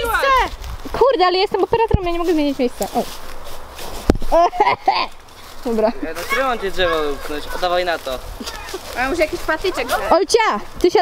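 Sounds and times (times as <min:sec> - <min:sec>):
young people's voices: 0:00.0 - 0:03.1, 0:04.3 - 0:11.0
handheld camera rustling: 0:00.0 - 0:11.0.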